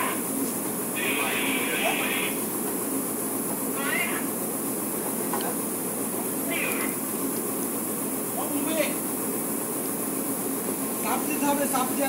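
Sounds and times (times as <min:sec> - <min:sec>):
ship deck machinery drone: 0:00.0 - 0:12.0
short high squeals: 0:03.7 - 0:04.3.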